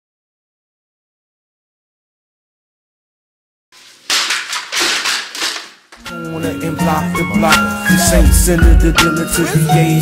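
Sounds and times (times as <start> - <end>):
books clattering on tiled floor: 3.8 - 6.0.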